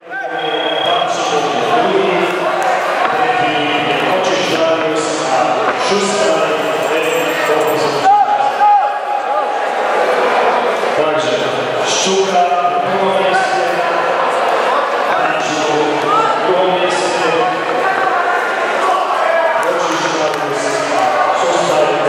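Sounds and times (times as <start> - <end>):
voices shouting in echoing hall: 0.0 - 22.0.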